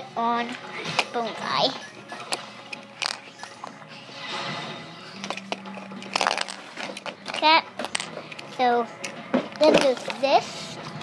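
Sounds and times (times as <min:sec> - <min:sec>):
plastic pieces clicking and rattling: 0:02.2 - 0:03.8, 0:05.2 - 0:10.6.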